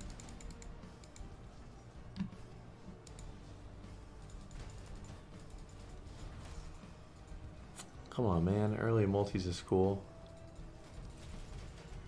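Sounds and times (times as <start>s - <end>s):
faint clicks and ticks: 0.0s - 1.4s, 2.1s - 3.5s, 4.2s - 9.0s
quiet background music: 0.0s - 12.0s.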